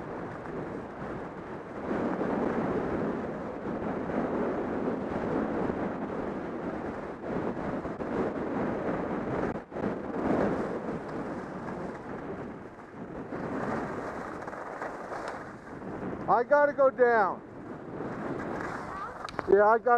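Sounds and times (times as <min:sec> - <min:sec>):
wind rushing over microphone: 0:00.0 - 0:19.9.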